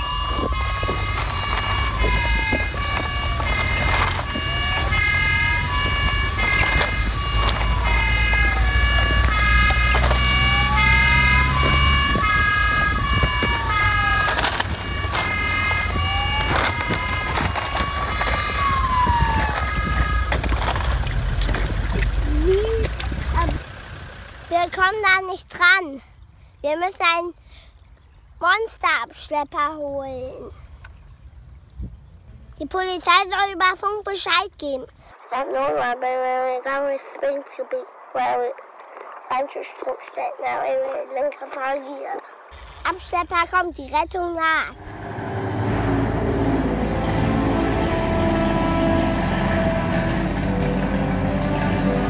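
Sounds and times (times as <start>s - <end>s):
two-tone horn: 0.0s - 20.4s, 45.3s - 52.0s
wailing siren: 0.0s - 23.6s, 44.8s - 52.0s.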